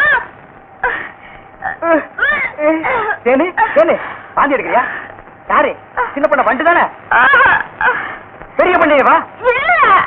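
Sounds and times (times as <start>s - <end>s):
person crying loudly: 7.1s - 8.0s.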